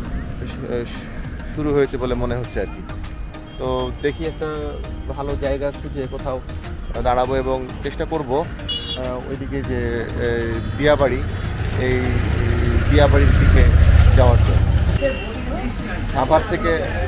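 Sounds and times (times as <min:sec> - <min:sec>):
background music with singing: 0:00.0 - 0:17.0
truck driving past: 0:09.2 - 0:16.5.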